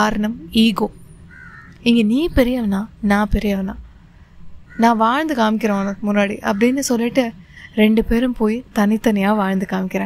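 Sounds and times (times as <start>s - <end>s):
woman narrating: 0.0s - 1.1s, 1.8s - 3.9s, 4.7s - 10.0s.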